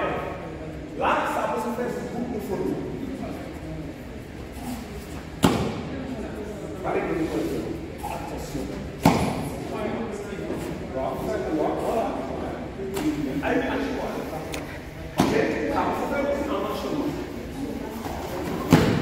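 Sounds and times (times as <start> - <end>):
men talking: 0.0 - 3.6, 6.0 - 18.1.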